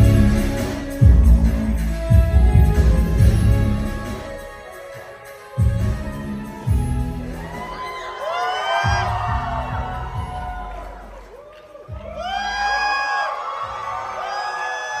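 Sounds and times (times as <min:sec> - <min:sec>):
deep bass hits: 0:00.0 - 0:04.0
pop dance track over loudspeakers: 0:00.0 - 0:10.8
audience screaming and whooping: 0:04.7 - 0:15.0.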